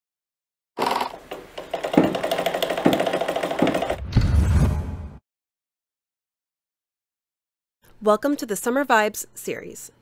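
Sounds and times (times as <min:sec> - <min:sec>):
fast mechanical rattle: 0:01.7 - 0:04.0.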